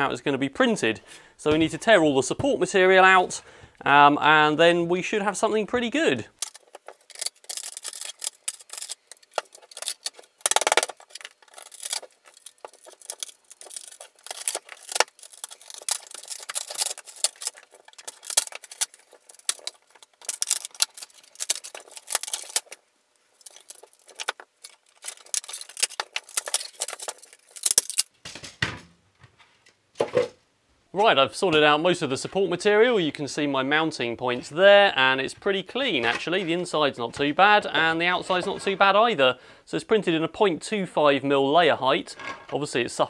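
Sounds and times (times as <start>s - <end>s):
plastic crackling and snapping: 6.4s - 28.1s.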